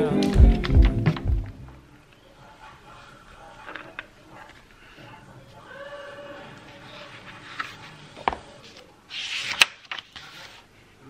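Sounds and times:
page turning swish and slap: 8.7 - 10.6.

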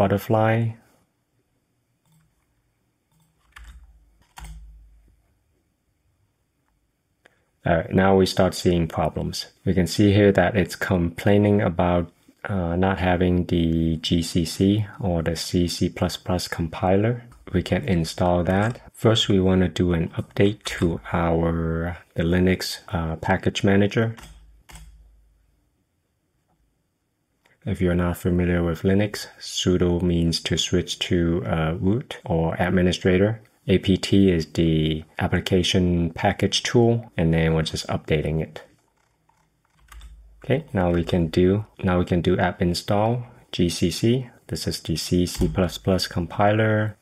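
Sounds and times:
mouse and keyboard clicks: 2.0 - 2.5, 3.1 - 4.8, 24.2 - 25.0, 38.7 - 40.2.

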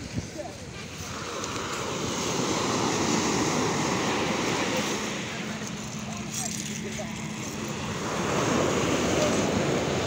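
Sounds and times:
surf breaking on beach: 0.0 - 10.0
wind on microphone: 0.0 - 10.0.

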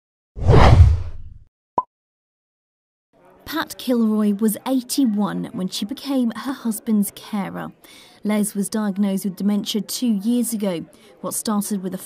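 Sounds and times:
deep whoosh: 0.4 - 1.4.

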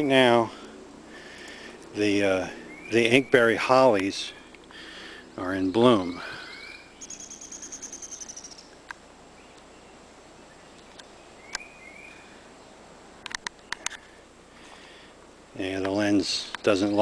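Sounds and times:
songbird high trill: 2.4 - 3.8, 5.7 - 8.8, 9.4 - 12.4
slurred bird chirps: 6.0 - 8.8, 9.4 - 12.3
sharp clicks: 13.2 - 14.0.

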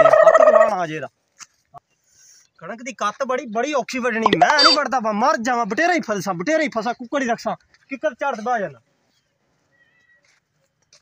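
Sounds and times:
high-pitched animal call: 4.3 - 4.8.

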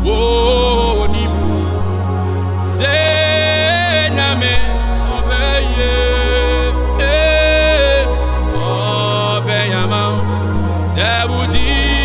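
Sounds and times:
backing music with bass: 0.0 - 12.0
man singing into a microphone: 0.0 - 12.0.

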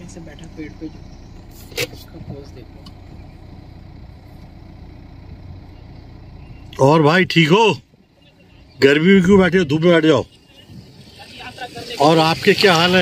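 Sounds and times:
car engine running: 0.0 - 13.0.

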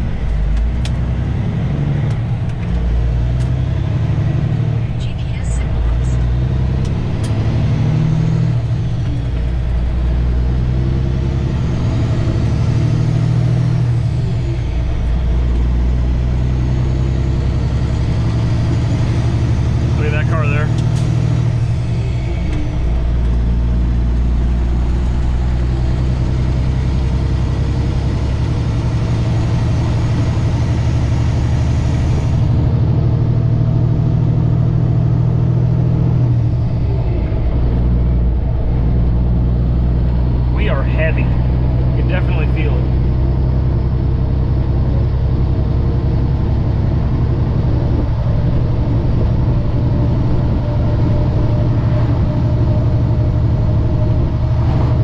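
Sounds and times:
truck diesel engine shifting gears: 0.0 - 55.0.

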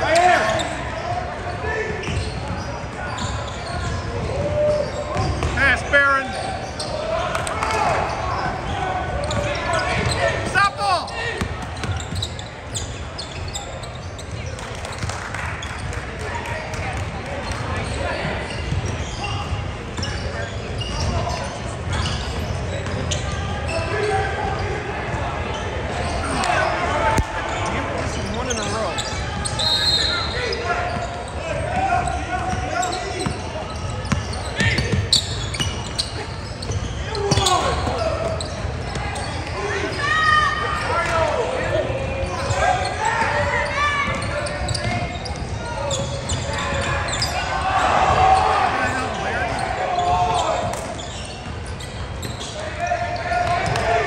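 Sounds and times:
chatter of voices echoing: 0.0 - 54.0
sneakers squeaking: 0.0 - 54.0.

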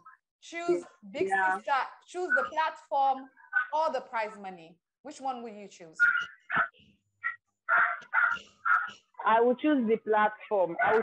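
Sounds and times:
short sharp animal calls: 6.0 - 9.0.

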